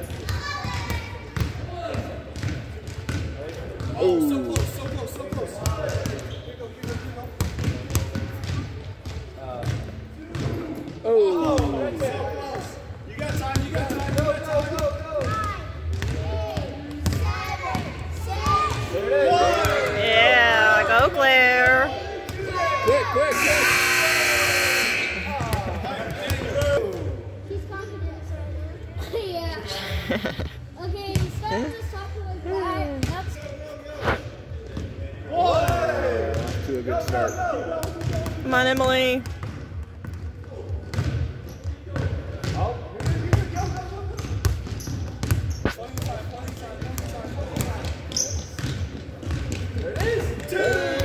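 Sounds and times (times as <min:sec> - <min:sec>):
basketball bouncing: 0:00.0 - 0:06.2, 0:06.8 - 0:10.6, 0:13.2 - 0:18.8, 0:24.8 - 0:26.8, 0:33.0 - 0:33.6, 0:37.8 - 0:51.0
scoreboard buzzer: 0:23.3 - 0:25.7
basketball bouncing on hardwood: 0:44.2 - 0:49.8.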